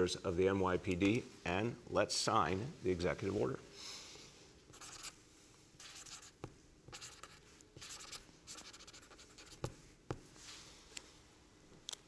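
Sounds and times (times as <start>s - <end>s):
pen scratching on paper: 4.7s - 5.2s, 5.8s - 9.8s.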